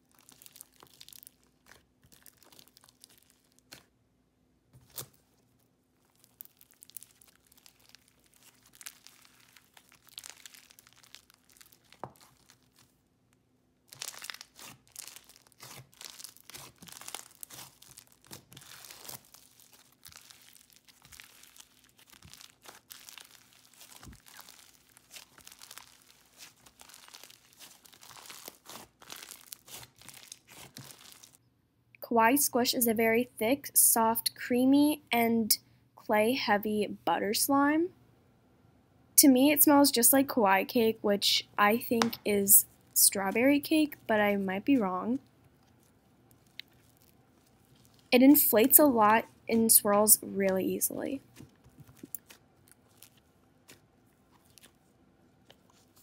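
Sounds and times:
slime crackling when squished: 0.0 - 3.9, 6.0 - 13.0, 13.9 - 31.4, 45.6 - 49.0, 51.2 - 56.0.

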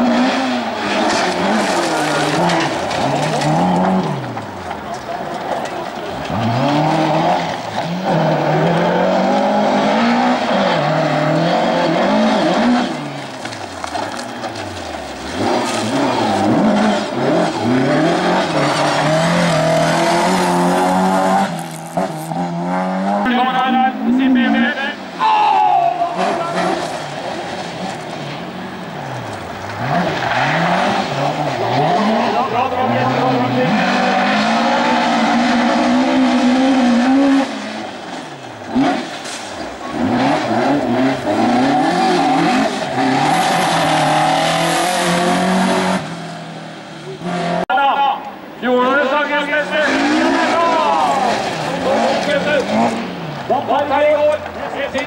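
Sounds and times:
tyres skidding on gravel: 0.0 - 47.9, 48.6 - 55.0
rally car engines revving: 0.0 - 55.0.

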